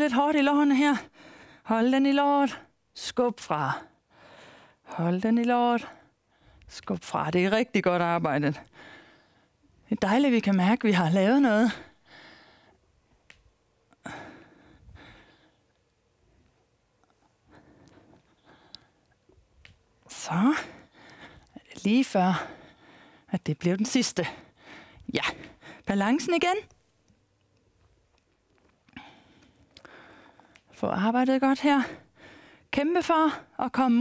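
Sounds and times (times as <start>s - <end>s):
soft breathy rustling: 14.0s - 23.3s.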